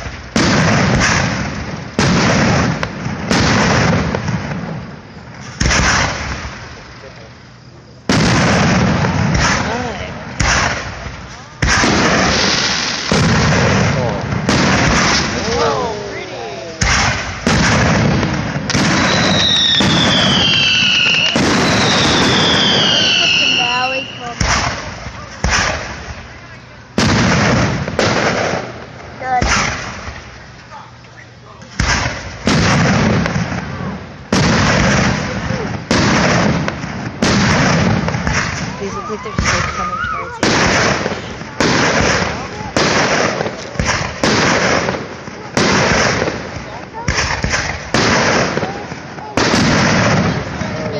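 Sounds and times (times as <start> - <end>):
fireworks booming: 0.0 - 50.9
high falling whistles: 19.0 - 24.2.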